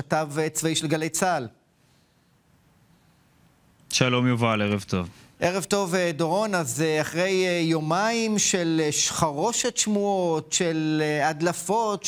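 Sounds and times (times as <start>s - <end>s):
man speaking: 0.0s - 1.6s, 3.9s - 12.0s
faint steady hiss: 0.2s - 8.6s.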